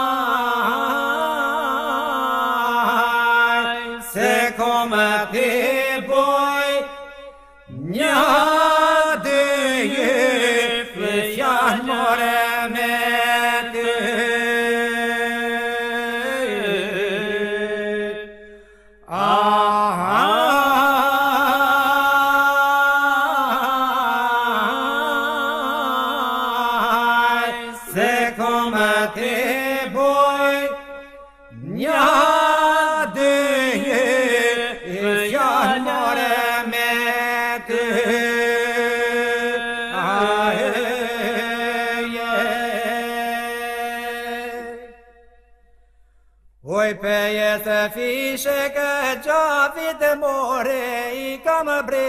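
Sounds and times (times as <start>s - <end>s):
lead voice singing: 0.0s - 6.9s
group of men singing a drone: 0.0s - 45.3s.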